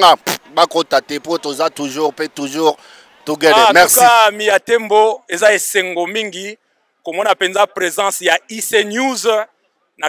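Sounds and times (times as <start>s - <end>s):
man talking into microphone: 0.0s - 9.5s.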